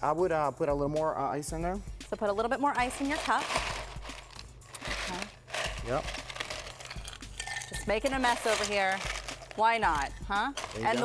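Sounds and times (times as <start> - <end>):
ice rattling into a glass: 3.2 - 9.6
people talking: 9.6 - 11.0.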